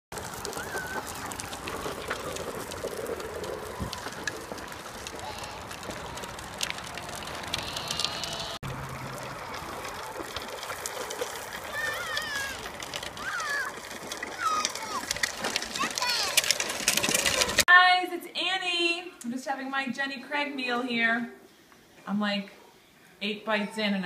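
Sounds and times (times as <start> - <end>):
trike wheels rattling on asphalt: 0.1 - 17.7
children calling out: 0.4 - 1.5, 5.1 - 6.6, 7.3 - 8.6, 11.6 - 16.6.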